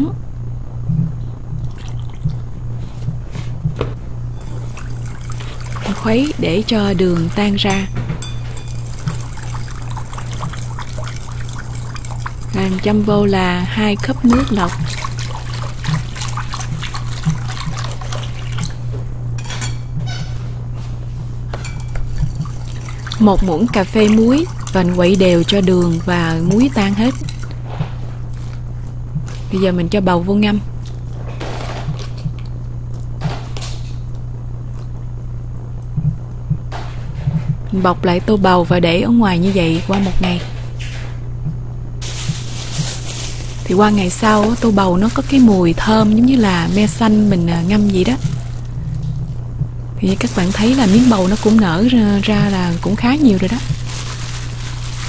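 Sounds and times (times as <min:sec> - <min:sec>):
steady low hum: 0:00.0 - 0:55.0
liquid pouring into bowl: 0:04.4 - 0:07.8, 0:08.4 - 0:18.8, 0:21.8 - 0:27.6, 0:50.0 - 0:55.0.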